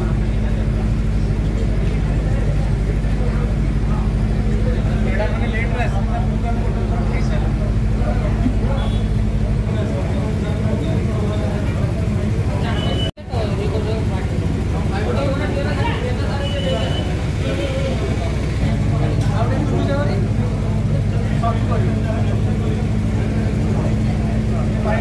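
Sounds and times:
indistinct chatter: 0.0s - 25.0s
low engine hum: 0.0s - 25.0s.

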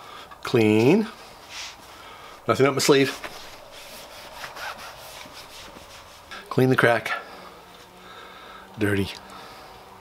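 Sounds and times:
cloth rubbing on metal table: 1.4s - 1.9s, 2.8s - 6.3s.

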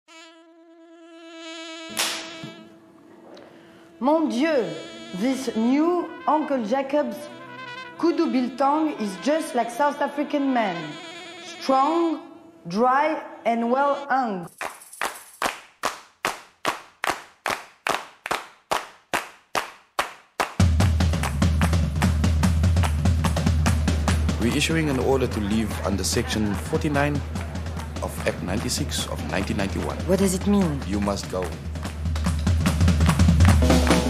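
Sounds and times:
insect-like buzzing tone: 0.1s - 14.5s
rhythmic handclaps: 1.9s - 2.3s, 14.5s - 34.0s.

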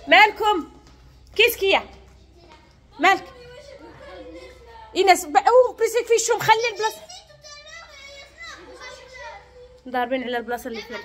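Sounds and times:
children chattering and playing: 0.0s - 11.0s.

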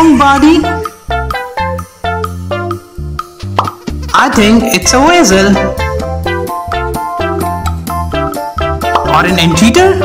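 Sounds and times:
bouncy cartoon background music: 0.0s - 10.0s
rising cartoon pop effect: 3.4s - 4.0s, 8.8s - 9.2s.

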